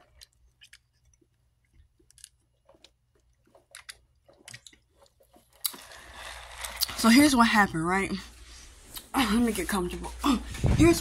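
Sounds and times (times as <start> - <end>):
sipping and chewing mouth sounds: 0.0 - 5.8.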